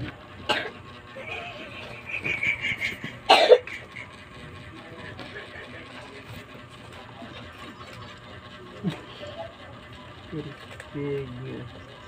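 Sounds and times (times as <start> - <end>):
girl coughing: 0.5 - 0.7, 3.3 - 3.6.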